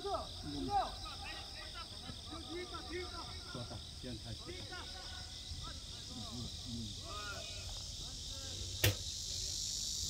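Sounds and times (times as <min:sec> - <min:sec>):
high-pitched insect chorus buzzing: 0:00.0 - 0:10.0
sharp knock: 0:08.8 - 0:09.0.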